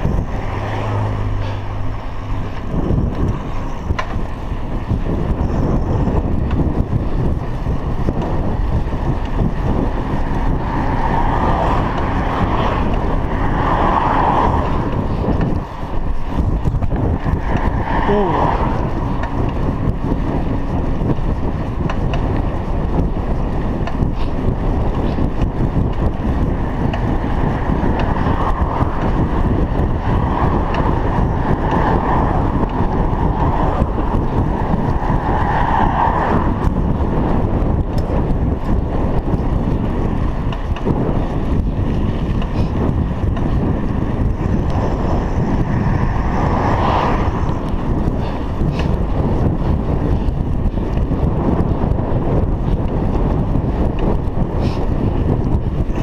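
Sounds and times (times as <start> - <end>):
wind noise on microphone: 0.0 - 56.0.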